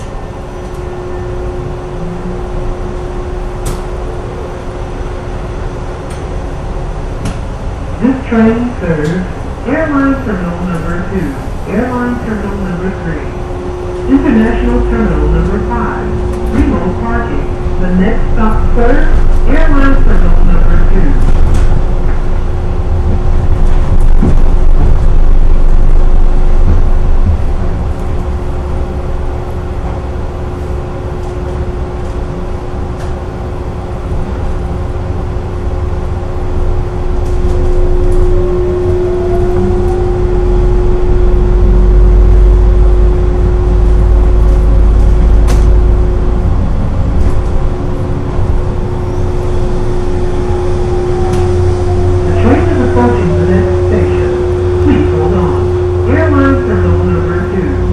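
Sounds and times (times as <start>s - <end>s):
constant hum: 0.0s - 57.9s
tram running rumble: 0.0s - 57.9s
motor whine: 36.9s - 47.1s, 47.7s - 56.8s.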